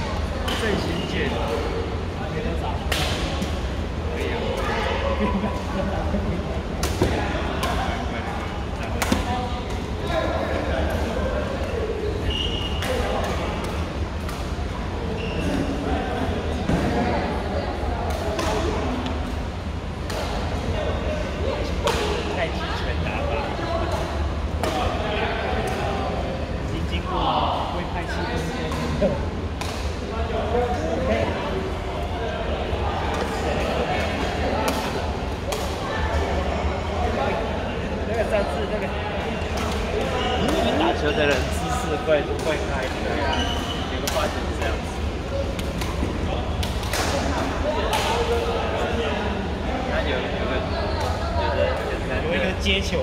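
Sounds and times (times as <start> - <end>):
echoing chatter: 0.0 - 53.0.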